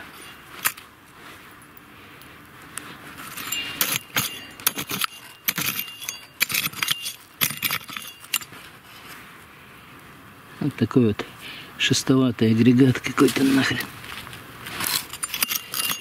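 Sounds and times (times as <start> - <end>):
small stones clinking: 3.2 - 8.5, 14.8 - 16.0
hoe digging into stony soil: 3.2 - 8.7, 14.6 - 16.0.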